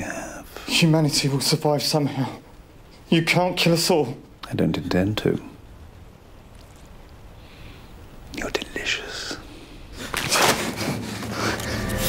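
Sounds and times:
man whispering: 0:00.0 - 0:01.0, 0:08.3 - 0:09.7.

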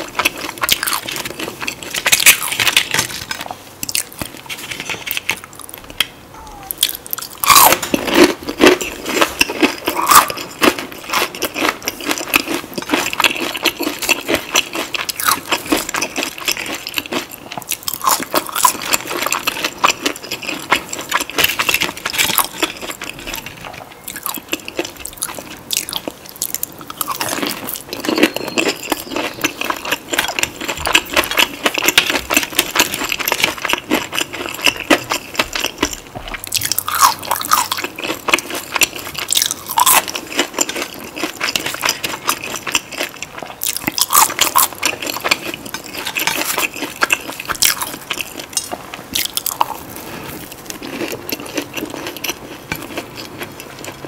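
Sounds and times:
crunchy fried food being chewed: 0:00.0 - 0:54.0.

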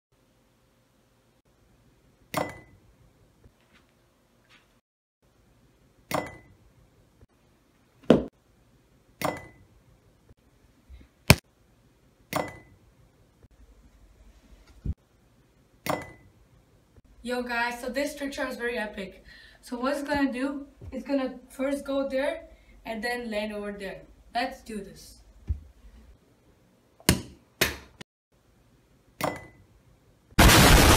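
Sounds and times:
ball knocking on hard surface: 0:08.1 - 0:08.3.

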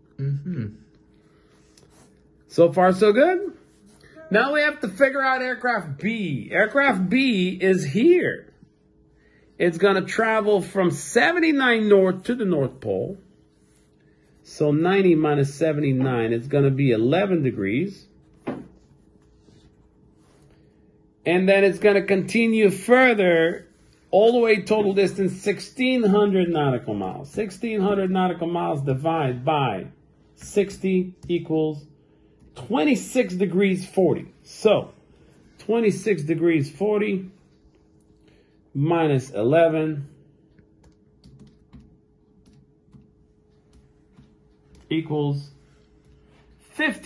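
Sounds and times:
faint steady hum: 0:00.0 - 0:47.0.

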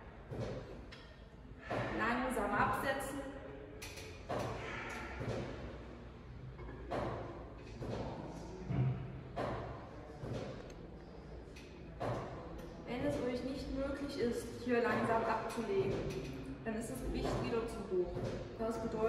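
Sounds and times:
exercise machine thuds and knocks: 0:00.2 - 0:00.9, 0:01.6 - 0:02.0, 0:04.3 - 0:05.8, 0:06.6 - 0:10.6, 0:12.0 - 0:12.4, 0:14.9 - 0:16.3, 0:17.2 - 0:18.6.

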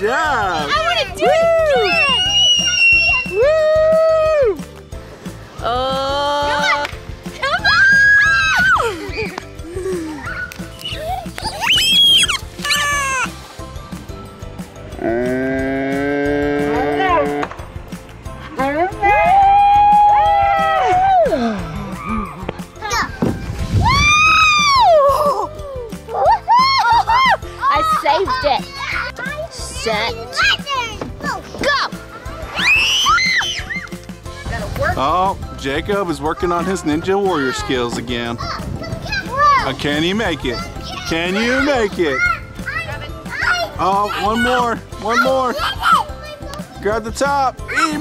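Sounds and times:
people cheering and squealing woo: 0:01.2 - 0:04.6, 0:07.7 - 0:09.4, 0:10.2 - 0:13.3, 0:19.1 - 0:22.4, 0:23.8 - 0:27.4, 0:32.5 - 0:34.0.

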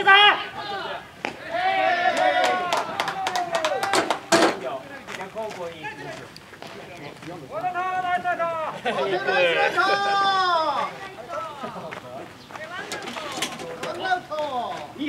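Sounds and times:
players shouting and calling: 0:00.0 - 0:15.0
sharp claps: 0:02.1 - 0:05.3
loud sharp knock: 0:04.0 - 0:04.7.

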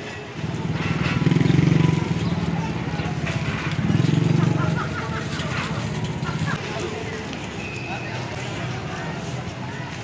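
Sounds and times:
chatter of people: 0:00.0 - 0:10.0
vehicle engine pulsing rumble: 0:00.0 - 0:10.0.

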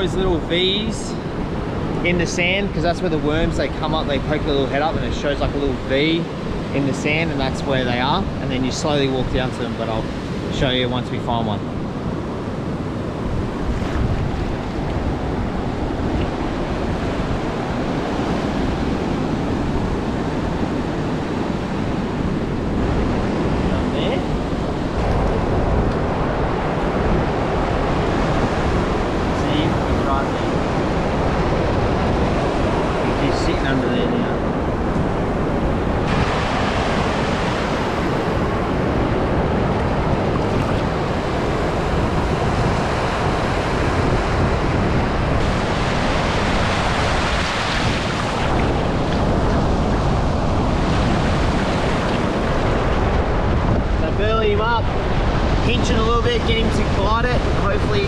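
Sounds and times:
wind buffeting microphone: 0:00.0 - 0:58.0
surf breaking on sandy beach: 0:12.2 - 0:58.0.

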